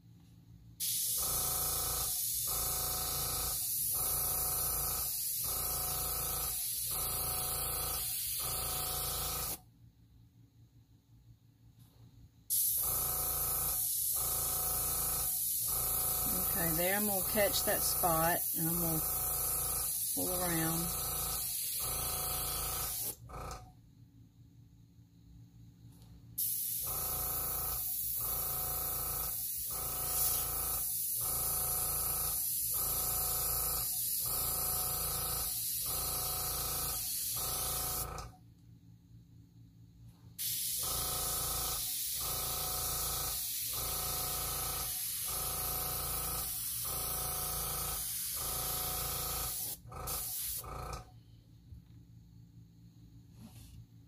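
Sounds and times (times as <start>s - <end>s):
air compressor humming: 0.8s - 9.7s, 11.7s - 23.7s, 25.8s - 38.4s, 40.0s - 54.0s
airbrush hissing: 15.2s - 23.2s, 29.2s - 30.9s.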